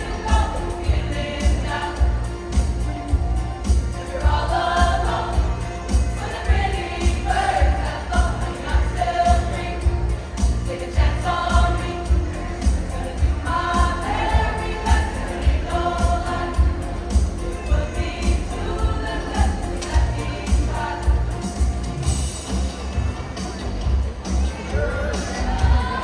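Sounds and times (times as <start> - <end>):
choir singing: 0.0 - 22.3, 24.8 - 26.0.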